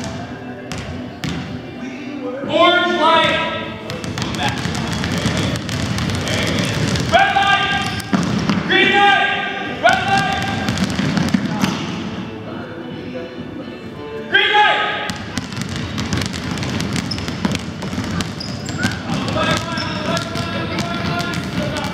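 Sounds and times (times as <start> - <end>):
basketballs bouncing on hardwood floor: 0.7 - 1.5, 3.2 - 8.7, 9.9 - 11.9, 15.1 - 21.9
shoe squeals: 6.2 - 8.2, 16.8 - 21.9.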